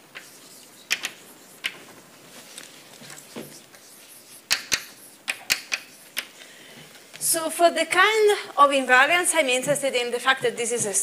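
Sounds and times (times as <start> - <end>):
chalk tapping on blackboard: 0.1 - 1.9, 3.3 - 6.3.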